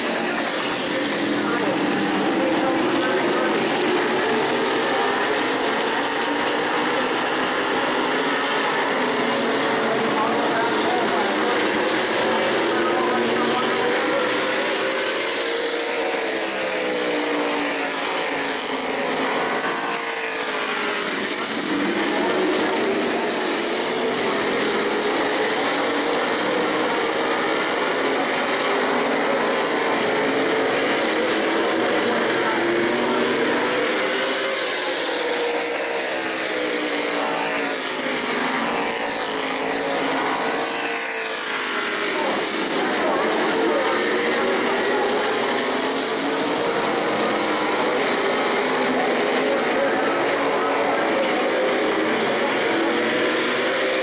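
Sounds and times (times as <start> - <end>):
race car engines roaring: 0.0 - 54.0.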